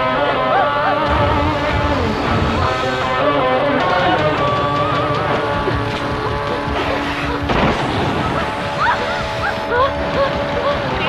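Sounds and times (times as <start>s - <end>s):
sudden noisy swell: 1.0s - 11.0s.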